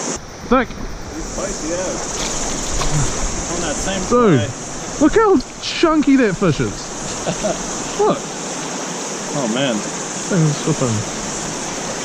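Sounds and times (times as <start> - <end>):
river water rushing: 0.0 - 12.0.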